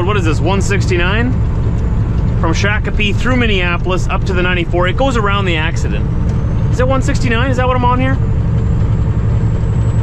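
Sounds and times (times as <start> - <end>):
diesel truck engine droning: 0.0 - 10.0.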